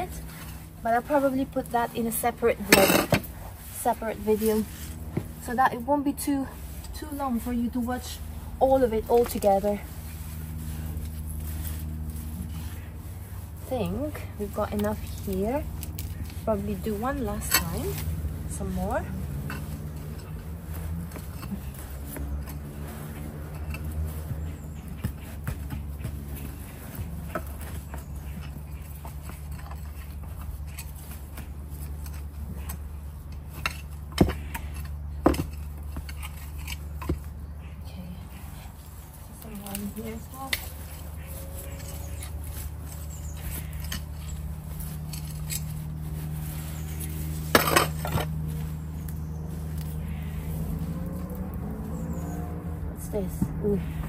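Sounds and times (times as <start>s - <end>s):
hand fork scraping compost: 0.0s - 54.0s
steady low hum: 0.0s - 54.0s.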